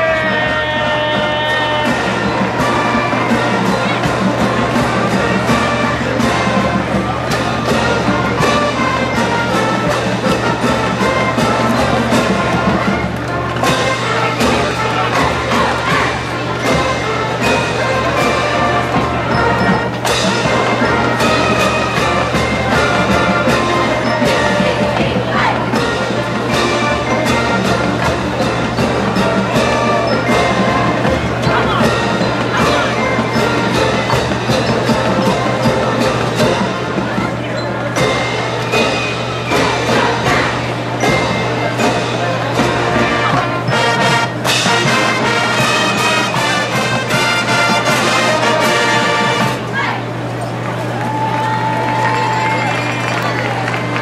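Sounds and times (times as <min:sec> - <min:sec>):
steady drum beat: 0:00.0 - 0:50.3
marching band playing a march: 0:00.0 - 0:54.0.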